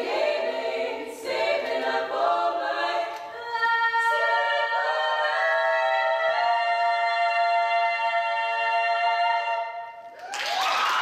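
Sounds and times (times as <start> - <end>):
women singing a cappella harmony: 0.0 - 10.1.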